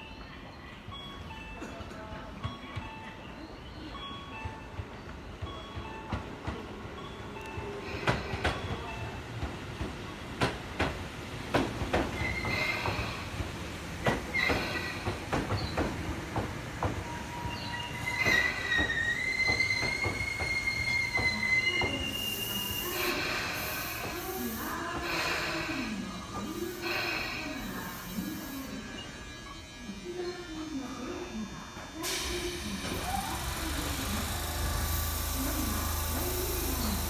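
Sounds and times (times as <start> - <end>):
train wheels clicking over joints: 8.0 - 27.4
train brake squeal: 12.1 - 13.2, 14.3 - 15.9, 17.0 - 29.6
hiss: 22.1 - 28.3, 32.0 - 37.0.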